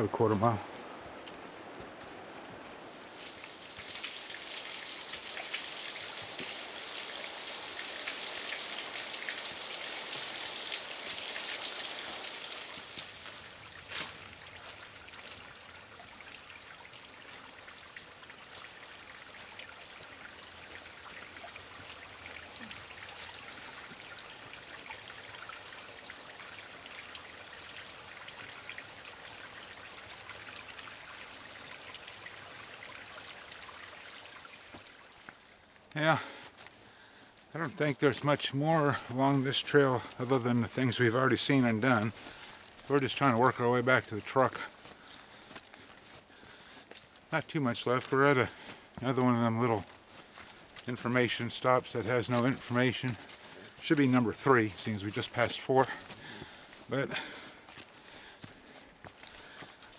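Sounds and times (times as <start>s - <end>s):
water trickling over rocks: 2.7s - 59.9s
waterfall splashing: 2.9s - 35.0s.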